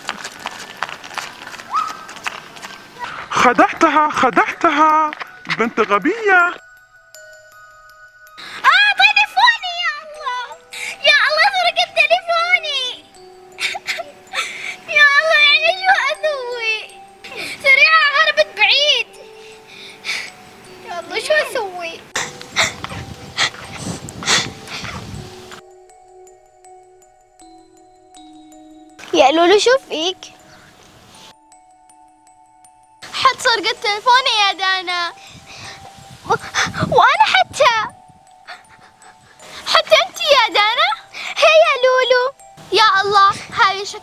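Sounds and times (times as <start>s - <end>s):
footsteps on brick paving: 0.0s - 6.7s, 29.0s - 29.2s
girl sobbing: 8.4s - 12.8s, 13.5s - 25.0s, 35.1s - 42.0s.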